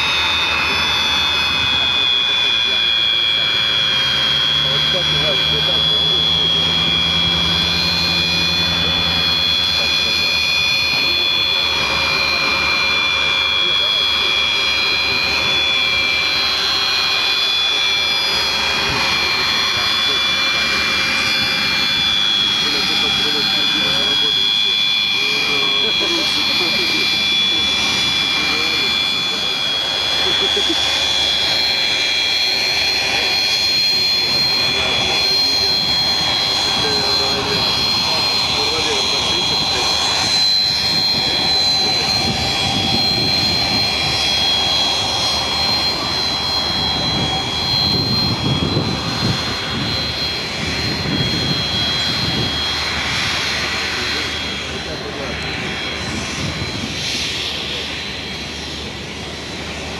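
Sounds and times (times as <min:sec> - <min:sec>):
high whine: 0:00.0 - 0:59.9
jet engines running: 0:00.0 - 0:59.9.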